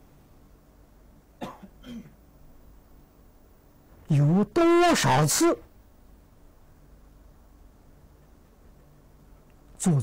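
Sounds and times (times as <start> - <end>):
man coughing: 1.4 - 2.2.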